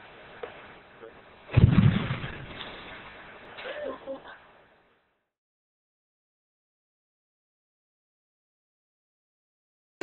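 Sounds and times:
explosion low rumble: 0:01.5 - 0:02.8.

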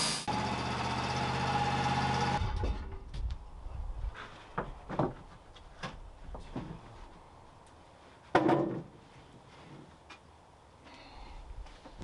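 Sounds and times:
wooden boards knocking together: 0:08.3 - 0:08.9.

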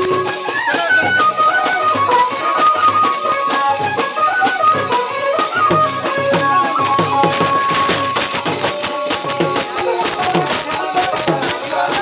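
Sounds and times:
barrel drums beating: 0:00.0 - 0:12.0
high gliding melody: 0:00.0 - 0:12.0.

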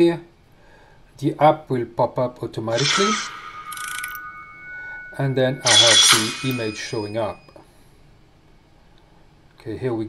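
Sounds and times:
steady high electronic tones: 0:02.7 - 0:07.5.

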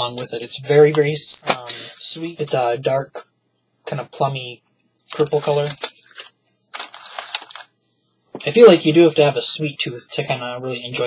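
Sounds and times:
plastic pack crackling: 0:05.1 - 0:07.7.

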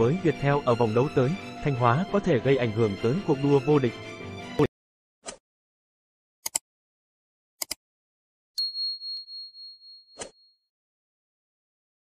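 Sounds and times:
notification bell ding: 0:08.6 - 0:10.2.

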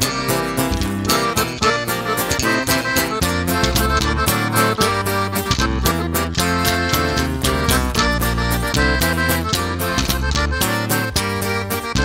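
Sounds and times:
accordion melody: 0:00.0 - 0:12.0
deep bass: 0:00.0 - 0:12.0
steady beat: 0:00.0 - 0:12.0.

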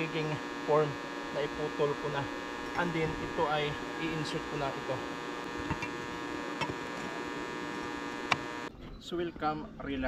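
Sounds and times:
electrical buzzing hum: 0:00.0 - 0:08.7
sharp clicks: 0:08.2 - 0:08.6.

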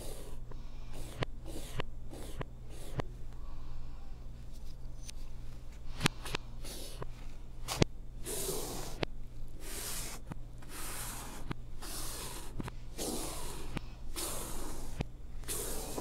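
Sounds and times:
reversed chalk scratching on blackboard: 0:00.0 - 0:03.1, 0:07.7 - 0:16.0.

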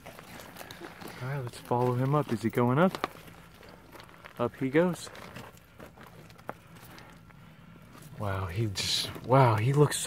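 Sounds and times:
scuffs and ticks on rock: 0:00.0 - 0:08.2.

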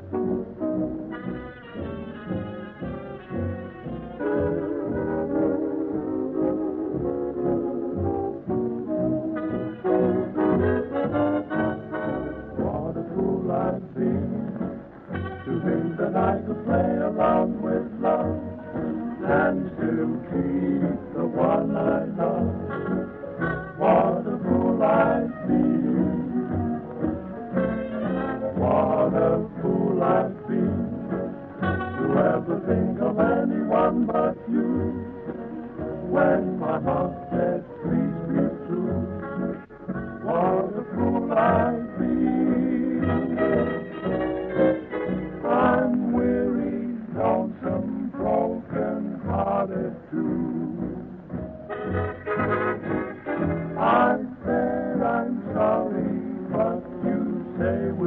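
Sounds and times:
dance band with brass: 0:00.0 - 0:42.0, 0:43.0 - 0:47.5, 0:51.0 - 0:58.0.

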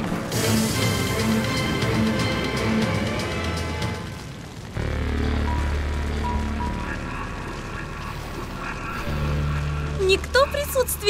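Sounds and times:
cartoon soundtrack music: 0:00.0 - 0:11.0
steady low rumble: 0:00.0 - 0:11.0.

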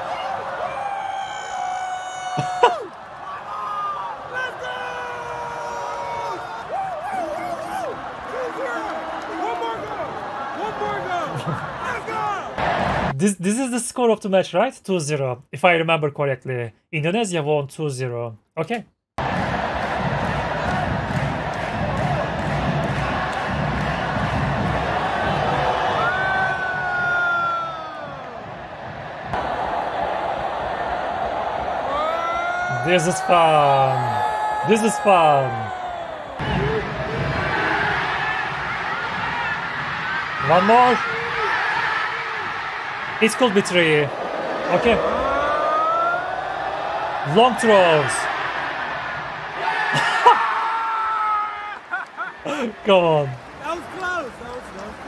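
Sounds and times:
stadium crowd chanting and cheering: 0:00.0 - 0:02.2, 0:02.8 - 0:13.2, 0:19.2 - 0:51.2.

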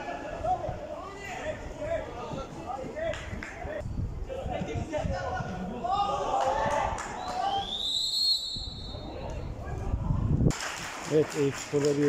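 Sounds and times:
referee's whistle blast: 0:07.5 - 0:09.0.

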